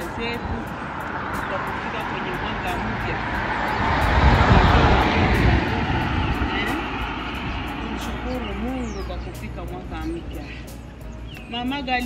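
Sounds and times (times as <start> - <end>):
vehicle passing by: 0.0 - 11.5.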